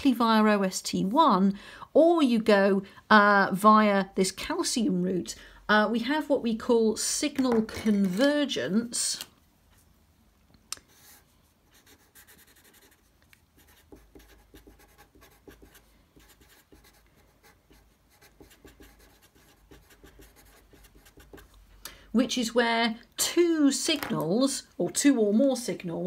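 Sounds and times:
marker scratching on paper: 10.9 - 21.6.

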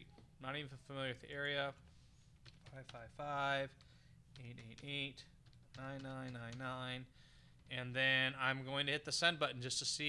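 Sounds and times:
man talking: 0.0 - 1.8, 2.7 - 7.1, 7.7 - 10.0
computer keyboard typing: 2.3 - 7.8.

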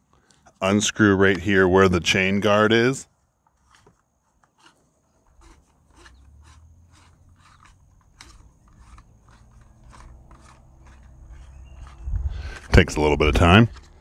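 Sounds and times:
low rumble of handling: 5.2 - 14.0.

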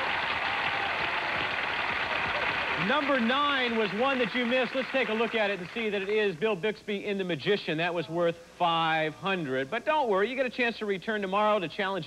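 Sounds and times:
audience applauding: 0.0 - 5.9.

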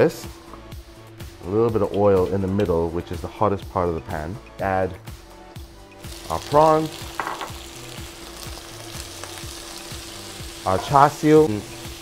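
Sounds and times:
prawns sizzling in a pan: 6.0 - 12.0.

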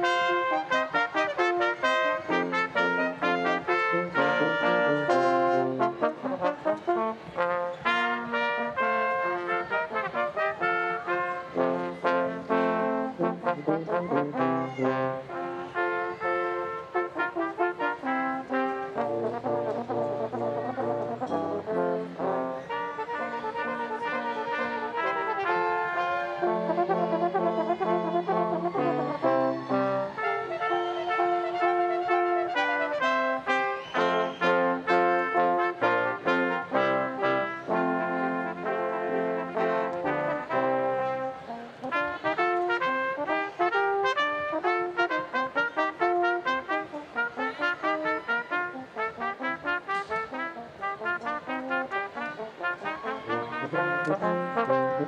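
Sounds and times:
brass ensemble playing: 0.0 - 55.0.

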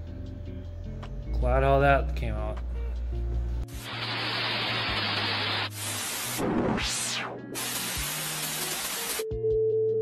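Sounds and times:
rising and falling sweep: 3.8 - 9.2
television static hiss: 3.8 - 9.2.

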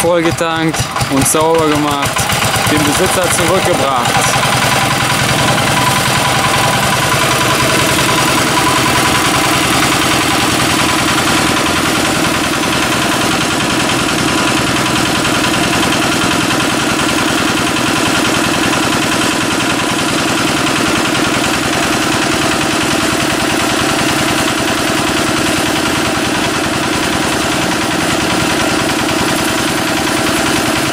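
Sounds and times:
air compressor engine running: 0.0 - 30.9.

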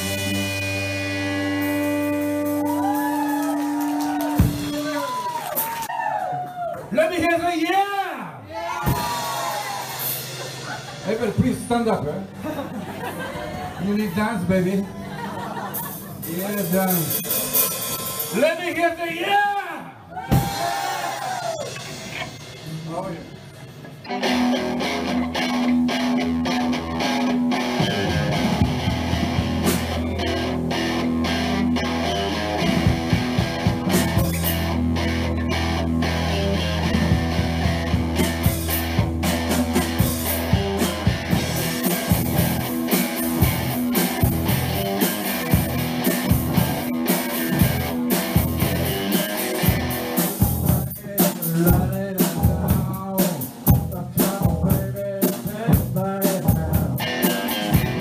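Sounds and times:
drum kit beat: 0.0 - 5.9, 8.8 - 12.2, 15.4 - 18.8, 20.2 - 58.0
electric guitar: 0.0 - 6.7, 23.8 - 51.0, 51.7 - 58.0
bass guitar: 0.0 - 6.8, 8.5 - 19.0, 20.0 - 58.0.

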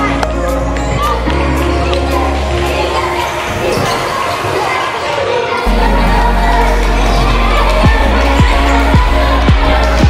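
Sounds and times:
arena music: 0.0 - 4.8, 5.6 - 10.0
crowd chatter echoing: 0.0 - 10.0.

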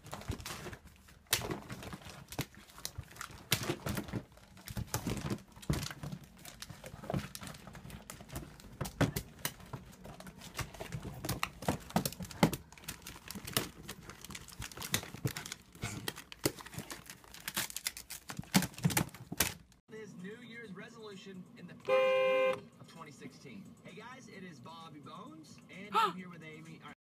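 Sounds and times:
cardboard tubes clattering and rustling: 0.0 - 19.8
horn-like tone: 21.9 - 22.7.

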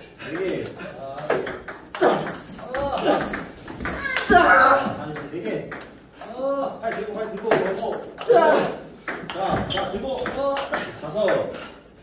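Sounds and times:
ball bouncing on table: 1.3 - 4.5, 6.9 - 8.2, 9.0 - 11.4.

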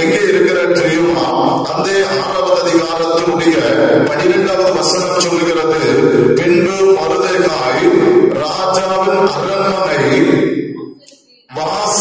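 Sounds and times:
man singing long held notes: 0.0 - 10.8.

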